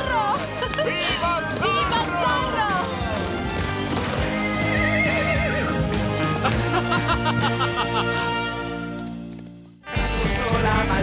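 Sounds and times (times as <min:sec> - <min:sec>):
horse whinnying: 0:00.0 - 0:09.0
background music: 0:00.0 - 0:11.0.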